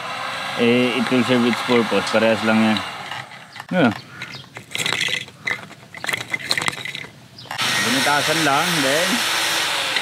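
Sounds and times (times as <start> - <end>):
plastic reel clicking and rattling: 1.0 - 7.6.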